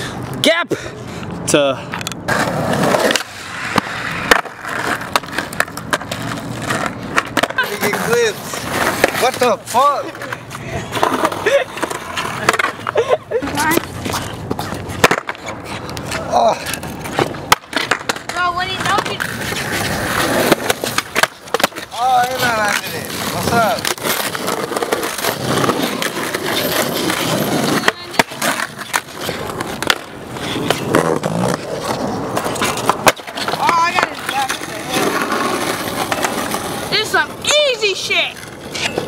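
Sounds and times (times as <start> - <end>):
skateboard wheels rolling on asphalt: 0.0 - 39.0
skateboard clacks: 1.9 - 39.0.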